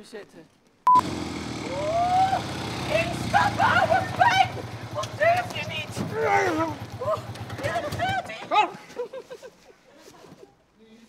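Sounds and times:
motorcycle engine running: 0:00.9 - 0:08.4
person calling out: 0:01.7 - 0:08.8.

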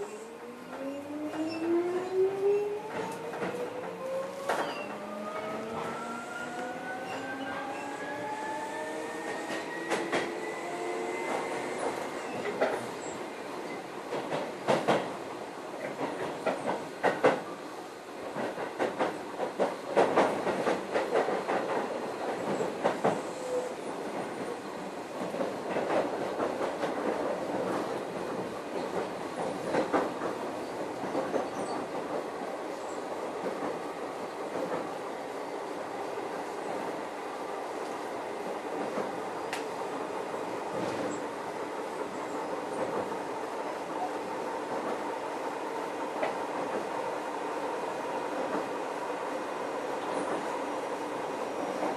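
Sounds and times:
train rolling noise: 0:00.0 - 0:51.9.

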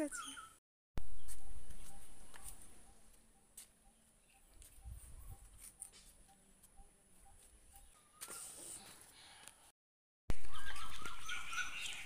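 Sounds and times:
birds chirping and calling: 0:00.0 - 0:08.6, 0:10.3 - 0:12.0.

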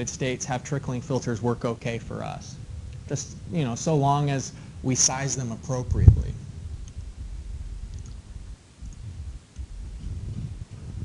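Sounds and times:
low room rumble: 0:00.0 - 0:11.0
faint clicks: 0:07.9 - 0:08.2.

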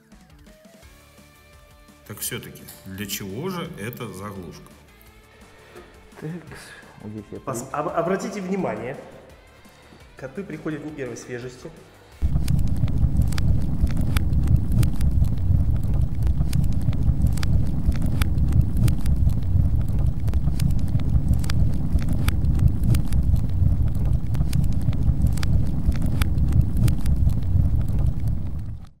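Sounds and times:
low rumble: 0:12.2 - 0:29.0
sharp crackles: 0:12.2 - 0:29.0.

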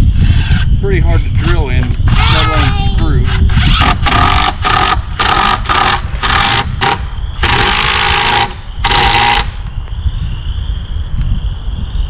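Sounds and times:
wind rumbling on microphone: 0:00.0 - 0:12.0
impact driver hammering screw: 0:03.6 - 0:09.5.

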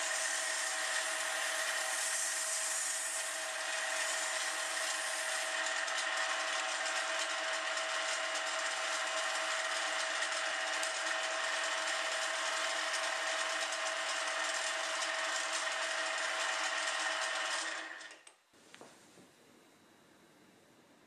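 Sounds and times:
sandpaper sanding hiss: 0:00.0 - 0:03.3
lathe motor whine: 0:00.0 - 0:18.3.

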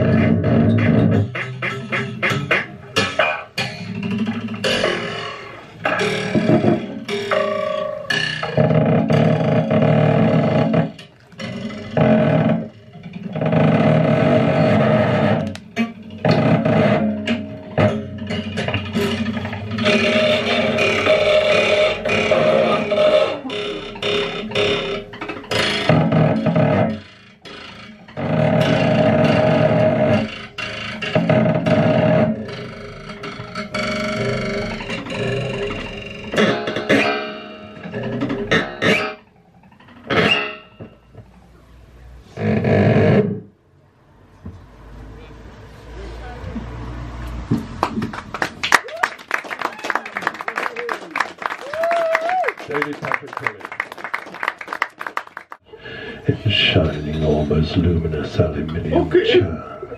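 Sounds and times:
amplified objects scraped and plucked: 0:00.0 - 0:41.4.

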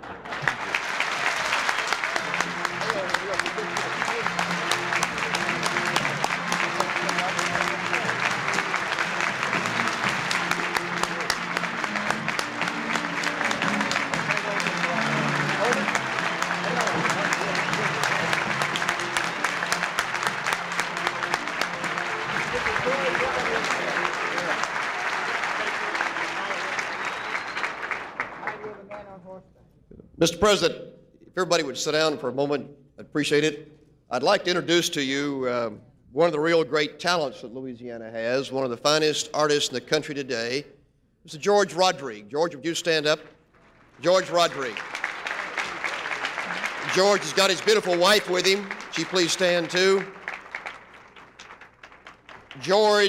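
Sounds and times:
audience applauding: 0:00.0 - 0:29.1, 0:43.6 - 0:53.0
music playing: 0:00.4 - 0:28.7, 0:44.0 - 0:51.5, 0:52.3 - 0:53.0.

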